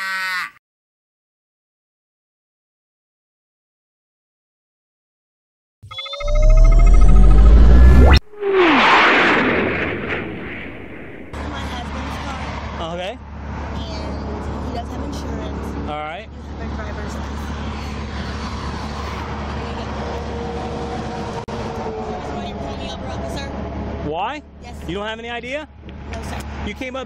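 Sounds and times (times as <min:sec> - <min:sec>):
loud rush of noise: 0:06.2 - 0:12.8
road traffic rumble: 0:06.9 - 0:27.0.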